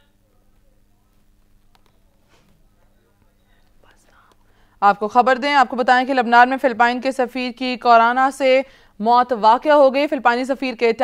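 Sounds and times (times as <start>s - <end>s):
newsreader speaking: 0.2s - 11.0s.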